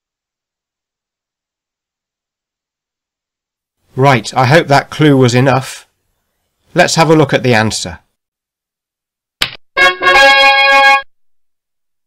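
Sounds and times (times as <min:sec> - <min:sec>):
held musical note: 0:09.8 - 0:11.1.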